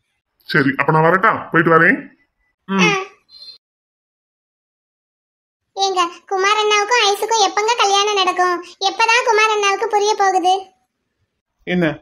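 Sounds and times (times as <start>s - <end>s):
high-pitched voice: 2.7s - 3.3s, 5.8s - 10.7s.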